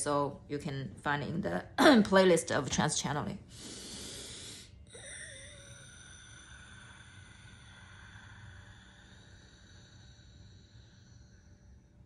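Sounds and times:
low background hum: 0.0 - 12.0
faint high-pitched ringing: 4.8 - 12.0.

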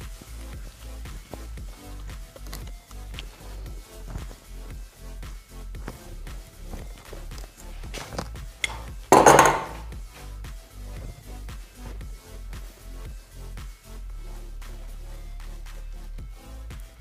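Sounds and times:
background music with steady beat: 0.0 - 17.0.

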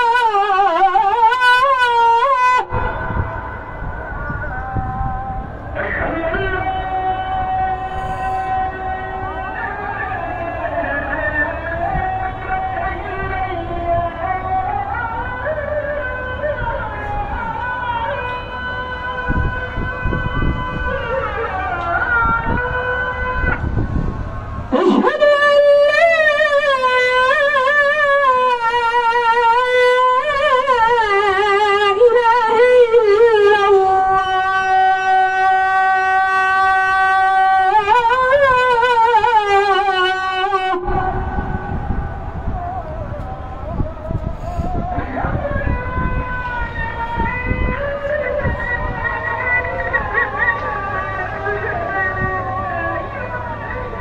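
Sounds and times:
man singing melismatic chant: 0.0 - 23.7, 24.5 - 54.0
wind rumbling on microphone: 0.0 - 54.0.

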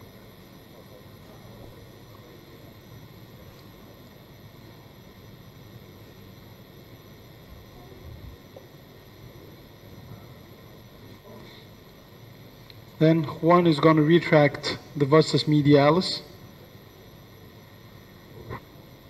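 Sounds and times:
room tone hum and hiss: 0.0 - 19.0.

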